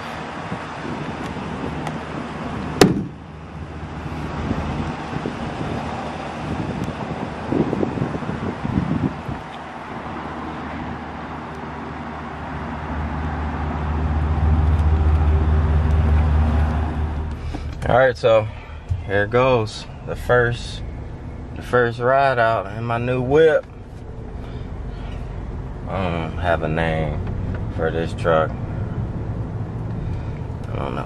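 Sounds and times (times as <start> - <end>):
low engine hum: 0.0 - 31.0.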